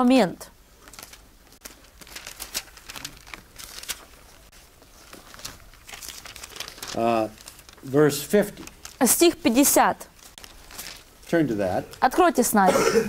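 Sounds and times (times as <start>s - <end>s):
paper pages rustling: 0.8s - 12.1s
person speaking: 6.8s - 10.2s, 11.2s - 13.0s.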